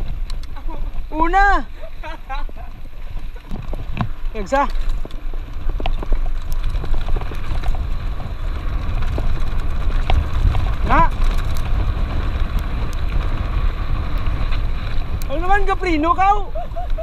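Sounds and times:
bike rattling clicks: 0:00.0 - 0:01.1, 0:02.0 - 0:15.6
bike tyres on gravel: 0:00.0 - 0:17.0
wind on microphone: 0:00.0 - 0:17.0
person shouting: 0:01.2 - 0:01.7.

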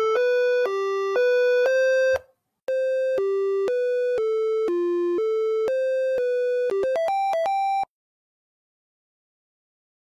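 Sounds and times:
electronic beeping melody: 0:00.0 - 0:07.9.

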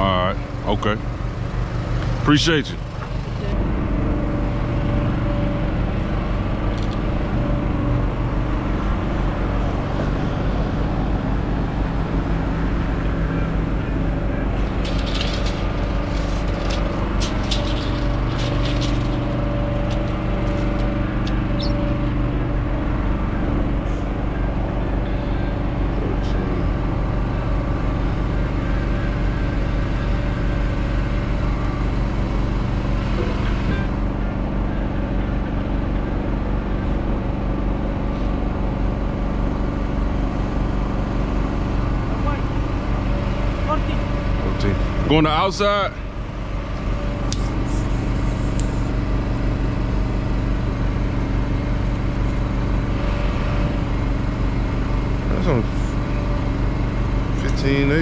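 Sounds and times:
diesel truck engine idling: 0:00.0 - 0:58.0
sharp metallic clanks: 0:14.6 - 0:22.0.

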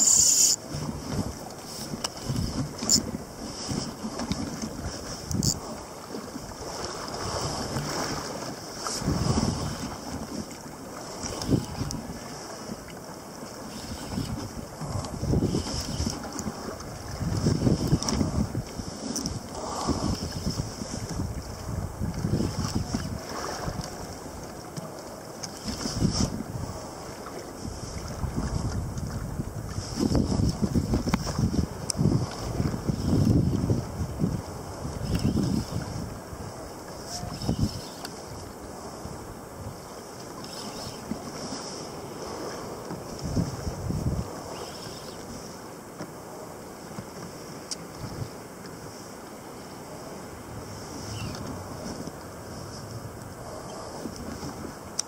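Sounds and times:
water slapping against hull: 0:00.0 - 0:55.0
wind buffeting microphone: 0:00.6 - 0:12.6, 0:13.9 - 0:24.6, 0:25.6 - 0:45.5, 0:47.9 - 0:48.4.

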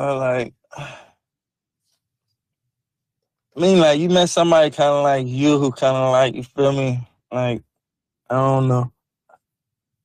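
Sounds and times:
man speaking: 0:00.0 - 0:00.7, 0:03.5 - 0:09.0.

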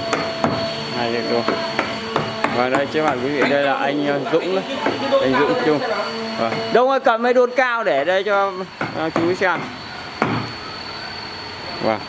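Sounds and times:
motor whirring with high whine: 0:00.0 - 0:12.0.

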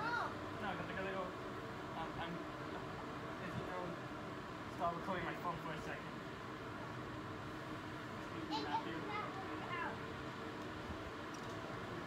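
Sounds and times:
distant children calling out: 0:00.0 - 0:00.5
steady background noise: 0:00.0 - 0:12.0.

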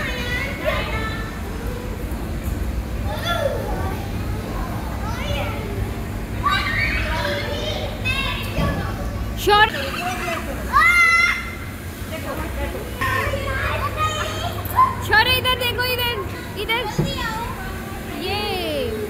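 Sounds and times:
children shouting and chattering: 0:00.0 - 0:19.0
steady low hum: 0:00.0 - 0:19.0.

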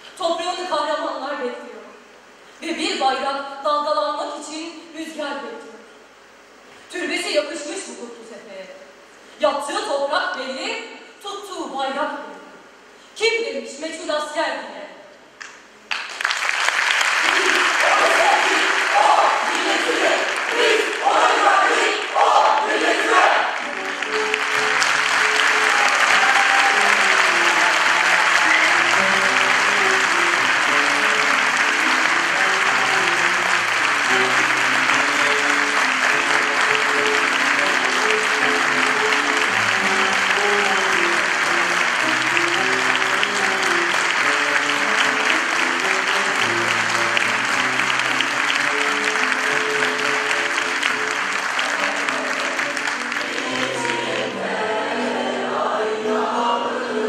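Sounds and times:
audience applause: 0:15.9 - 0:54.3
slow instrumental music: 0:22.8 - 0:54.6.

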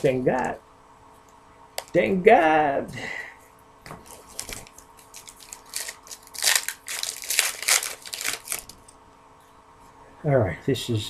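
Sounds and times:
foil wrapper tearing and crinkling: 0:04.0 - 0:08.8.

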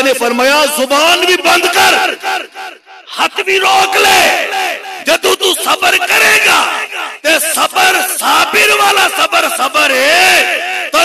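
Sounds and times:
man shouting over loudspeaker: 0:00.0 - 0:11.0.

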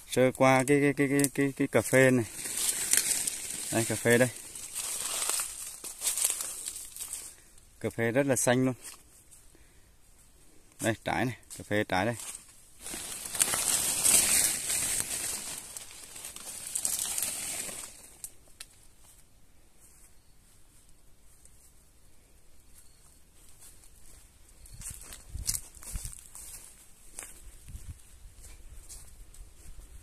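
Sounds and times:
leaves rustling near microphone: 0:00.0 - 0:30.0
footsteps on dry grass: 0:01.0 - 0:22.0, 0:22.6 - 0:30.0.

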